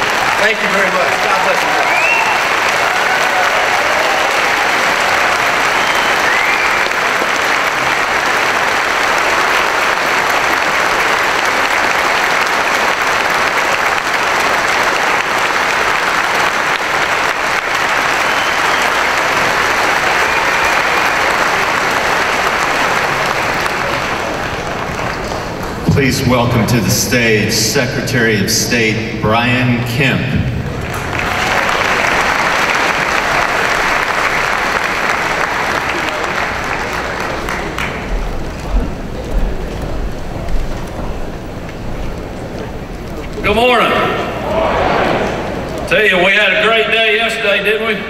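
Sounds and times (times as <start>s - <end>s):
audience applauding: 0.0s - 27.4s, 30.6s - 46.8s.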